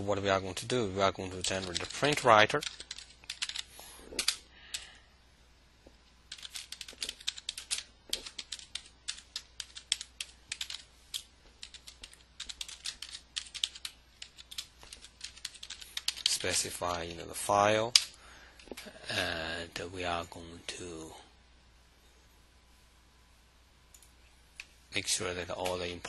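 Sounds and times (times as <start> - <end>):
typing on computer keyboard: 1.4 - 4.9, 6.3 - 16.6.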